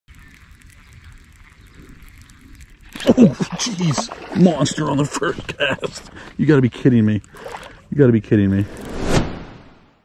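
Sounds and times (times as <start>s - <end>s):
wind rumble on microphone: 0.1s - 2.9s
fishing reel ticking: 0.1s - 3.0s.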